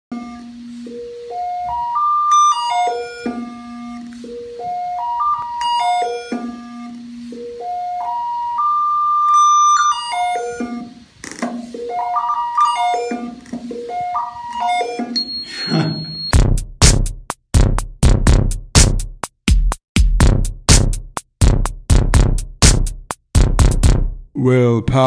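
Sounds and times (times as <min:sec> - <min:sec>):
electronic theremin tones: 0:00.1 - 0:16.4.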